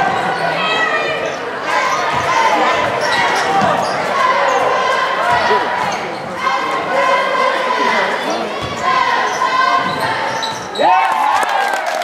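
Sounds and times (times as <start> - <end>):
sneakers squeaking: 0.0 - 6.9, 7.6 - 11.0
spectators' voices: 0.0 - 12.0.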